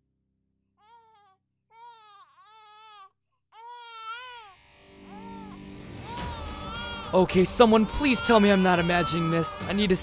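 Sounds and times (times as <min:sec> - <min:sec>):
infant crying: 0:00.8 - 0:10.0.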